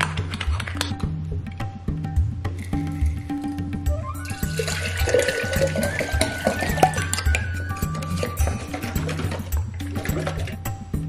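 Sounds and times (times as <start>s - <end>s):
background music: 0.0s - 11.0s
water pouring into a glass jar: 2.6s - 10.8s.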